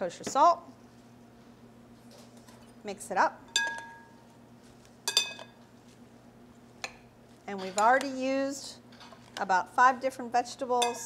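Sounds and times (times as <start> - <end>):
metal spoons clinking in glass bowl: 3.5 - 4.1, 5.1 - 5.5, 10.8 - 11.0.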